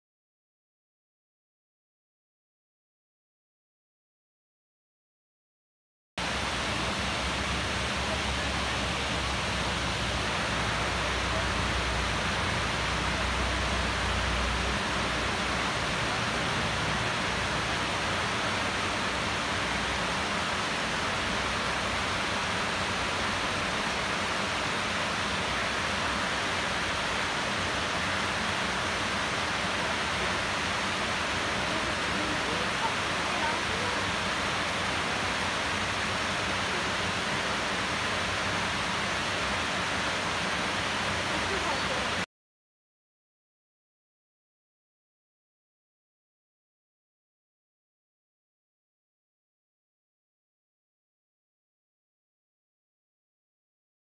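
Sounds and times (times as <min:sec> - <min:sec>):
waterfall rushing: 0:06.2 - 0:42.2.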